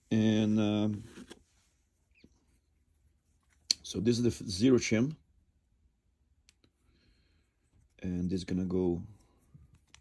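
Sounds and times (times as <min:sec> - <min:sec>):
man talking: 0:00.0 - 0:01.2, 0:03.7 - 0:05.2, 0:08.0 - 0:09.3.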